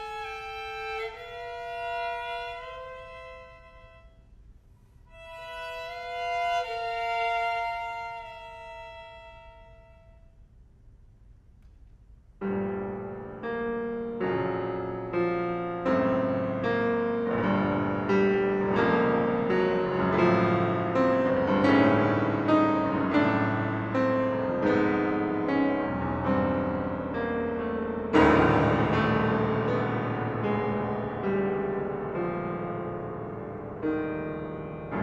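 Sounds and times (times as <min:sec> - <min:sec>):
violin melody: 0:00.0 - 0:04.3, 0:05.1 - 0:10.3
piano chords: 0:12.4 - 0:35.0.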